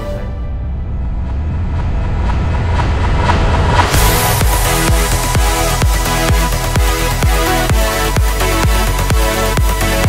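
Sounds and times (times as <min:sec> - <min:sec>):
deep bass rumble: 0:00.0 - 0:10.0
electronic whoosh: 0:00.1 - 0:06.7
dance music: 0:03.7 - 0:10.0.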